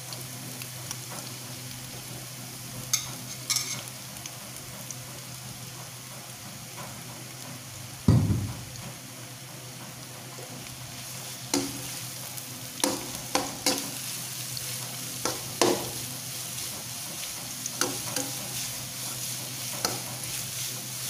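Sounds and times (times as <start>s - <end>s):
onions sizzling in oil: 0.0s - 21.0s.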